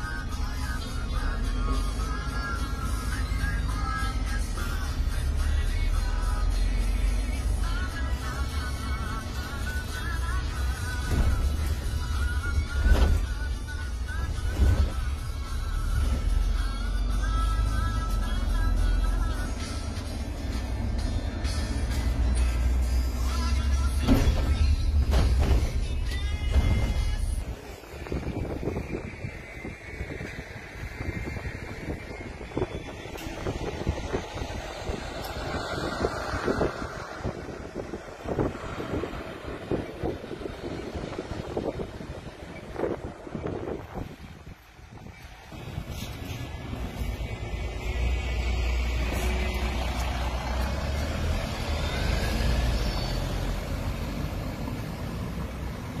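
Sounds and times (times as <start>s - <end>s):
bus engine and road rumble: 0.0s - 56.0s
rattles and knocks: 10.8s - 13.6s, 23.9s - 27.4s.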